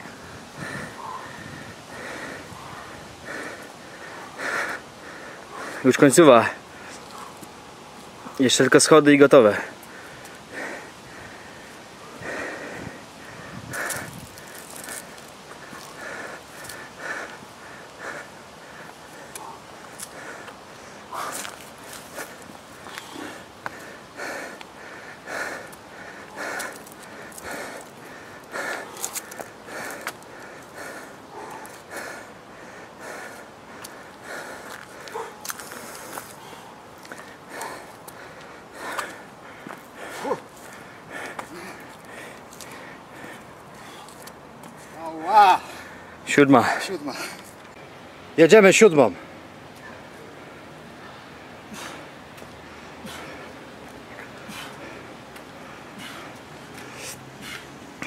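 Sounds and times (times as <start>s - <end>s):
man breathing hard: 0.0s - 7.5s, 9.4s - 47.5s, 49.2s - 58.0s
footsteps on paving: 33.8s - 42.8s.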